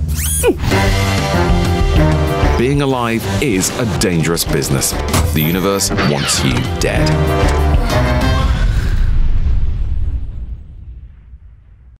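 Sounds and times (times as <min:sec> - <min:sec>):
explosion rumble: 0:08.4 - 0:12.0.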